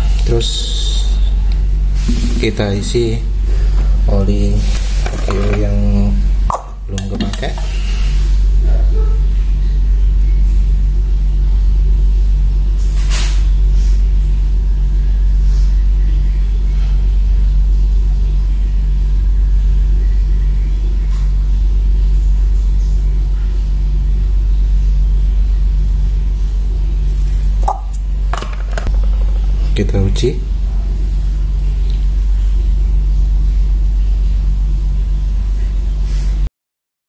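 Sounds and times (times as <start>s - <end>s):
loud steady low hum: 0.0s - 36.5s
brief knock: 2.1s - 2.6s.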